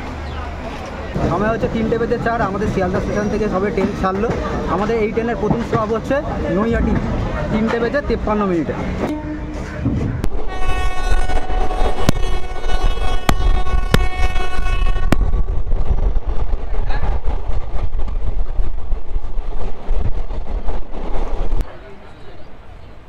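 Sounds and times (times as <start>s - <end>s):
low rumble of moving train: 0.0s - 23.0s
train horn: 9.0s - 15.3s.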